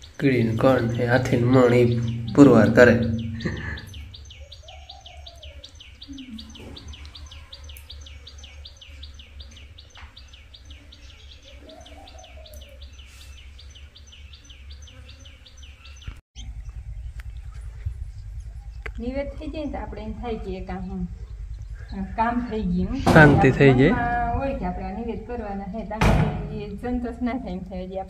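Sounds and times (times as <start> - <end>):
low rumble: 0.0 - 4.7, 16.4 - 27.7
wind on microphone: 16.4 - 27.1.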